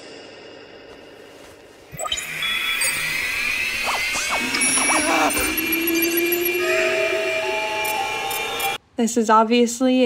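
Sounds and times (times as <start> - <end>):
electronic sweeping tones: 1.9 - 8.8
steady high tones: 1.9 - 8.8.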